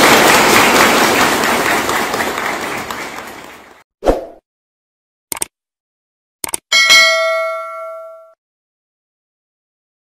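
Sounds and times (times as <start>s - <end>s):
notification bell ding: 6.7s - 8.4s.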